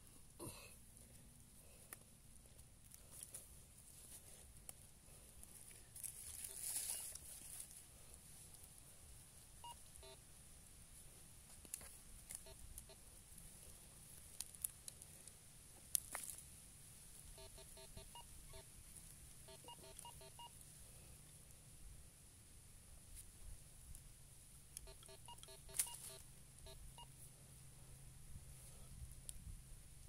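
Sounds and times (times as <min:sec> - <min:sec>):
loose soil rustling: 0:00.0 - 0:22.0
metal detector short beeps: 0:19.5 - 0:20.6, 0:24.8 - 0:27.1.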